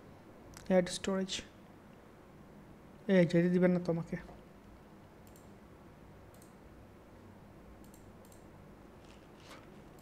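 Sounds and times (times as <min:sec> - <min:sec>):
low room hum: 0:00.0 - 0:10.0
computer mouse clicks: 0:05.2 - 0:05.6, 0:06.3 - 0:06.6, 0:07.8 - 0:08.5.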